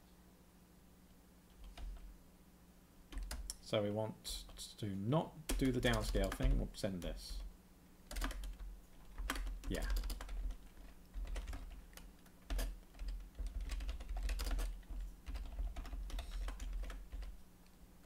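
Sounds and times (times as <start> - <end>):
typing on computer keyboard: 3.1 - 3.6, 5.5 - 7.5, 8.1 - 17.4.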